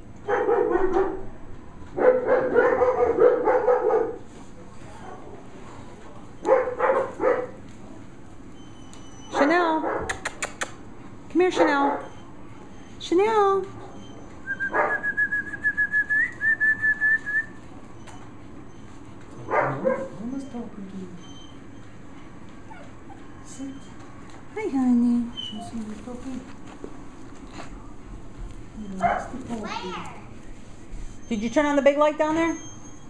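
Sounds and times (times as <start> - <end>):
dog drawn-out vocal calls: 18.0 - 20.3.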